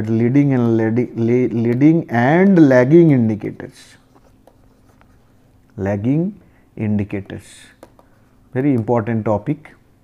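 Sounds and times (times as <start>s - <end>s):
man speaking: 0.0s - 4.1s, 5.8s - 7.8s, 8.5s - 9.8s
stylus scratching on tablet: 3.8s - 5.5s.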